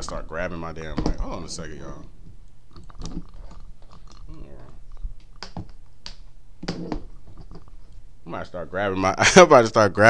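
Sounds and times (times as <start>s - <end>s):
microphone handling clicks and knocks: 2.2s - 8.0s.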